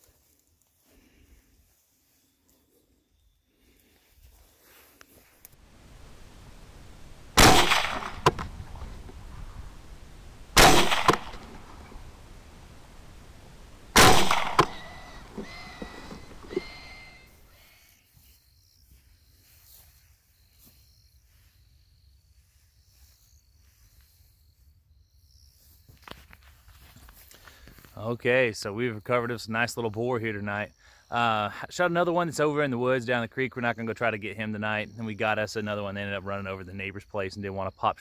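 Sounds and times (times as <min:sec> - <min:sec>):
low hiss: 0:03.7 - 0:18.1
rifle shots with echo: 0:07.4 - 0:08.6, 0:10.5 - 0:11.9, 0:13.9 - 0:16.7.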